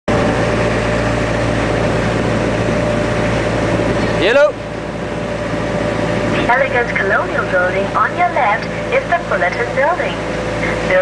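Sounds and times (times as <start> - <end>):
boat engine droning: 0.1 - 11.0.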